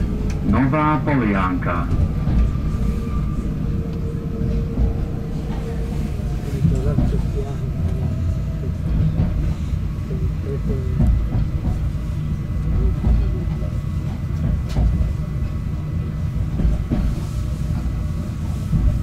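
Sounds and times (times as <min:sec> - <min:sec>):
wheels rumbling on track: 0:00.0 - 0:19.0.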